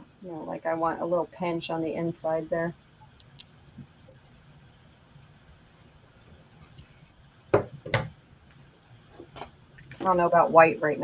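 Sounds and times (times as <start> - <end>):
knocks on table: 7.6 - 8.1.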